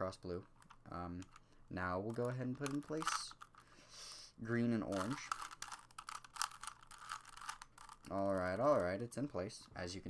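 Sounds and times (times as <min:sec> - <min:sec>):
puzzle cube clicking and scraping: 0:00.4 - 0:03.8, 0:04.5 - 0:10.0.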